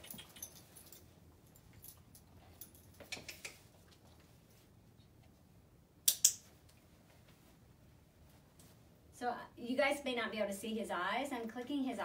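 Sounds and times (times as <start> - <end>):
leash jingling: 0.0 - 3.2.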